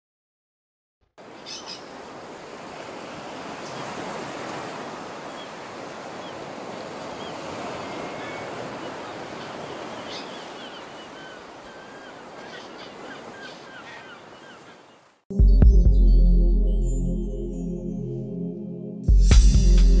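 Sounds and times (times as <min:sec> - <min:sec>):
faint bird calls: 0:01.2 - 0:02.0, 0:05.2 - 0:15.2
waves rushing: 0:01.2 - 0:15.2
wind: 0:01.2 - 0:15.3.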